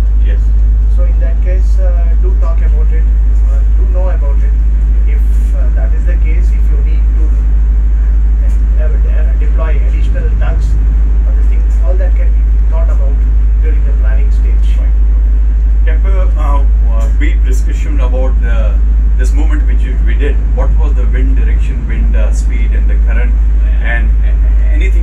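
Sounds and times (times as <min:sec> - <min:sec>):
boat engine droning: 0:00.0 - 0:25.0
man talking: 0:00.2 - 0:07.5, 0:08.3 - 0:25.0.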